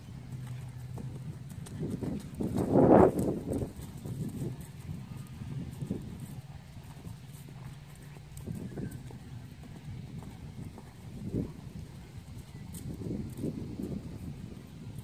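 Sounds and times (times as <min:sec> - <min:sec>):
horse hoofbeats on grass: 0:00.0 - 0:15.0.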